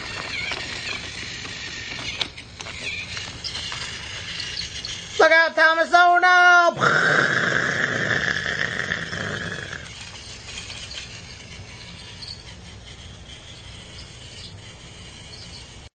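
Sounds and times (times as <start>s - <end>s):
train brakes squealing: 0.0s - 5.2s, 10.1s - 15.9s.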